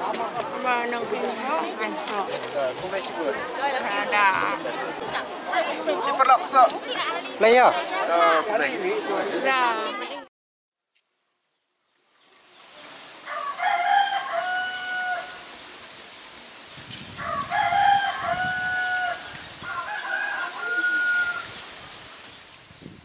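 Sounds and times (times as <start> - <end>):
faint outdoor background: 0.0 - 23.0
rooster crowing: 13.2 - 15.5, 17.2 - 21.6.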